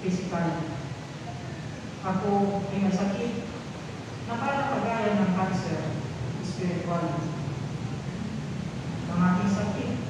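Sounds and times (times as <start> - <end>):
hiss-like room hum: 0.0 - 10.0.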